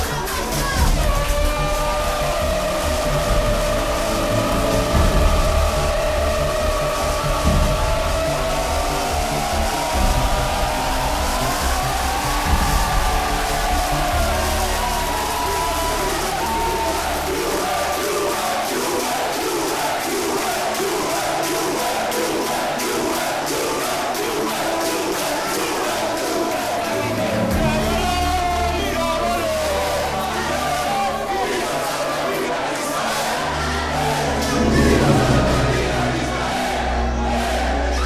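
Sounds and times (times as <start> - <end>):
football fans chanting and shouting: 0.0 - 38.0
music: 0.0 - 38.0.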